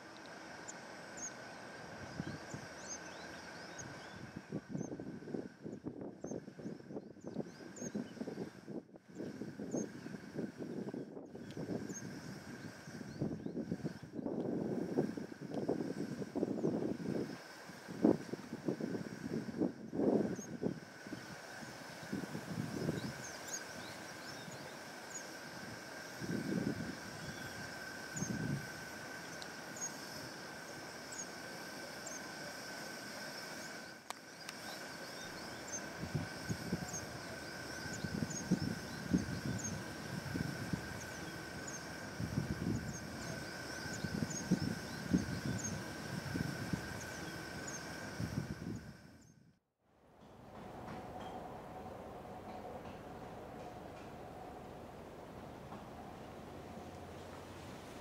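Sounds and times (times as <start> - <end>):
wind gusting on microphone: 1.8 - 24.7, 25.4 - 30.4, 34.7 - 49.5.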